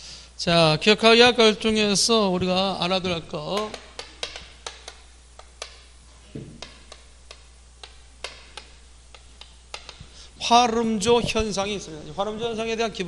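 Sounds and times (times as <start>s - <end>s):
chalk tapping on chalkboard: 3.4s - 10.2s.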